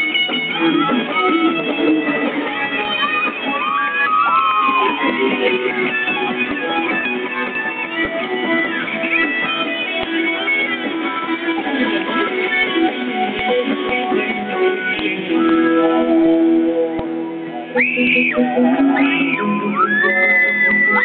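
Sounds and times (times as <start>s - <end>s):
rock band with electric guitar: 0.0s - 21.0s.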